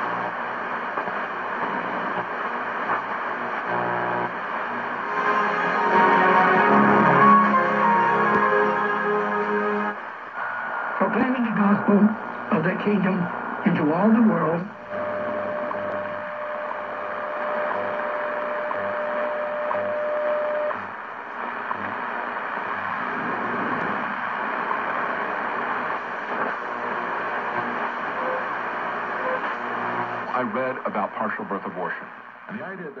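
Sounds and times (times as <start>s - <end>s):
radio static hiss: 0.0s - 33.0s
faint voice on radio: 30.3s - 33.0s.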